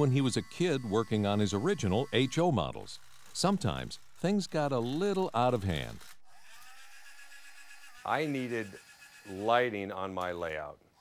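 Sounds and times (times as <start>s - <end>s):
small electric motor whirring: 0.0s - 11.0s.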